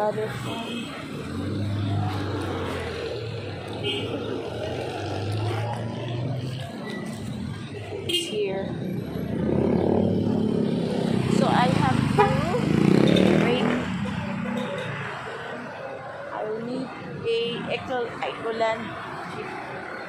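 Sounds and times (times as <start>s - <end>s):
woman talking: 0.0s - 0.9s, 8.2s - 8.8s, 11.3s - 12.7s, 13.3s - 13.8s, 16.3s - 18.9s
vehicle engines running: 0.0s - 20.0s.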